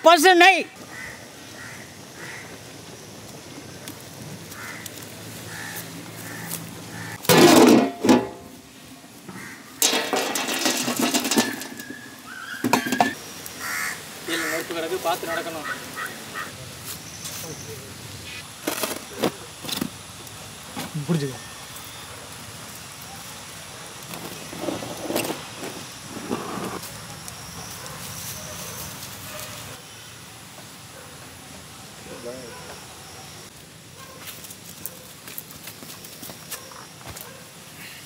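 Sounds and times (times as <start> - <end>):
embers rattling and scraping: 7.2 - 8.6, 9.8 - 13.2, 18.6 - 20.0, 23.9 - 26.9
metal pot lid clanking: 7.3 - 8.5, 9.8 - 12.0, 12.6 - 13.2.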